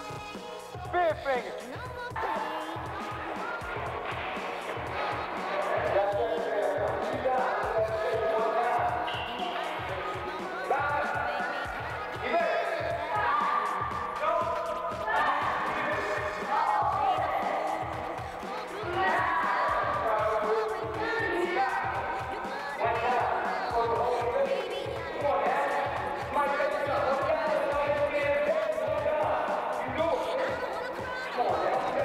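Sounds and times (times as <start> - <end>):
voices singing sliding notes: 0.0 - 32.0.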